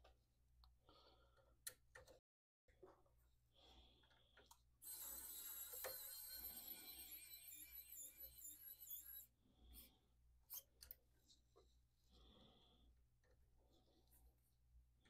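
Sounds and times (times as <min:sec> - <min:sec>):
electric screwdriver motor whine: 0:04.8 - 0:09.2.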